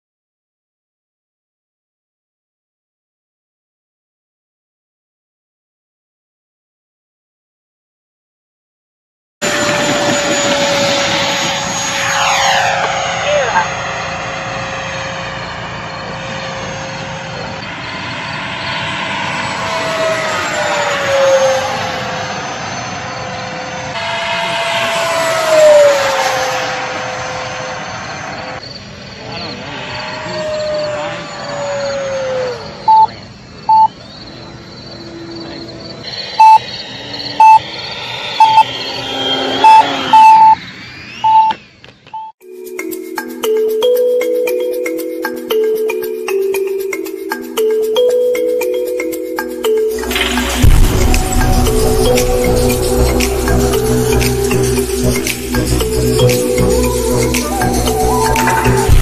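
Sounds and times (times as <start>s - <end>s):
model jet motor whining: 9.4s - 28.6s, 29.2s - 33.0s, 38.2s - 42.0s
short electronic beeps: 32.9s - 33.1s, 33.7s - 34.0s, 36.1s - 42.3s.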